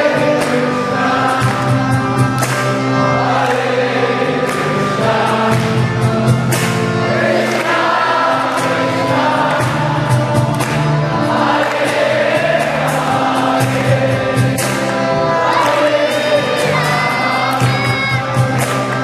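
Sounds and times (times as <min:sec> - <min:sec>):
group singing a devotional chant: 0:00.0 - 0:06.0, 0:07.0 - 0:18.4.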